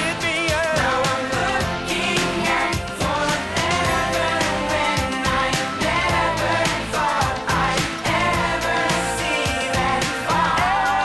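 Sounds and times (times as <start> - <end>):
instrumental music with steady beat: 0.0 - 11.0
girls singing: 1.4 - 11.0.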